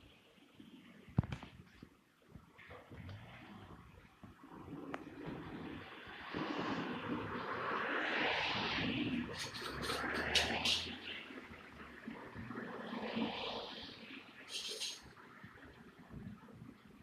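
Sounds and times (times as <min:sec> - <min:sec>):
passing vehicle: 0:05.8 - 0:13.8.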